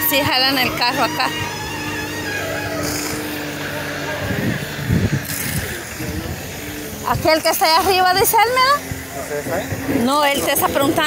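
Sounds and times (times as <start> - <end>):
diesel engine running and revving: 0.0 - 11.0.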